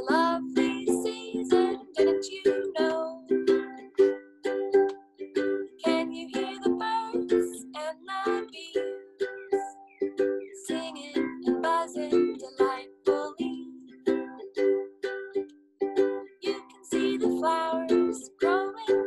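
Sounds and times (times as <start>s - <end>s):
woman singing: 0.0s - 3.6s, 5.8s - 9.8s, 10.5s - 13.7s, 16.4s - 19.0s
ukulele strumming: 0.0s - 19.0s.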